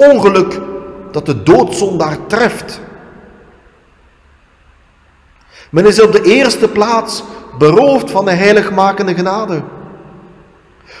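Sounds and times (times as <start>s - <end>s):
person speaking: 0.0s - 3.3s, 5.6s - 9.9s
low steady hum: 0.0s - 11.0s.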